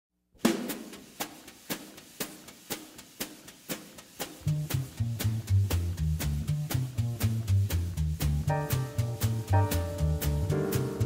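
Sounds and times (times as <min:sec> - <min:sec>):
jazz drum kit playing: 0:00.4 - 0:11.0
sharp snare rim strokes: 0:00.4 - 0:11.0.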